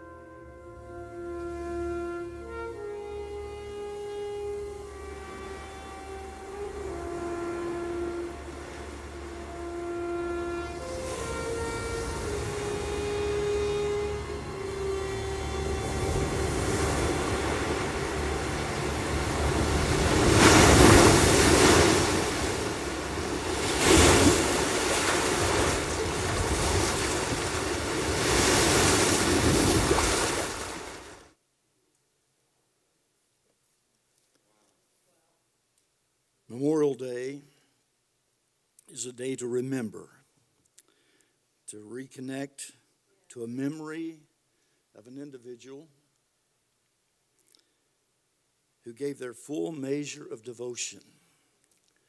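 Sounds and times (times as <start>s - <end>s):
slow orchestral melody: 0.0s - 31.0s
waves breaking on beach: 6.4s - 31.3s.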